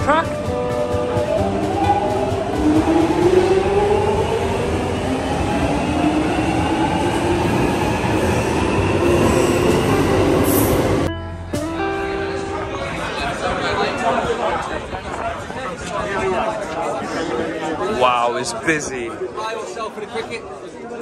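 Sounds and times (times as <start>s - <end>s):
underground train rumble: 0.0s - 11.1s.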